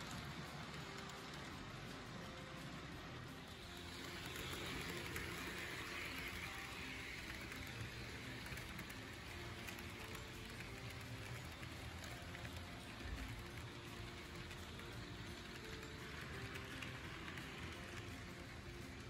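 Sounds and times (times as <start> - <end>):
model train wheels on rails: 0.0 - 19.0.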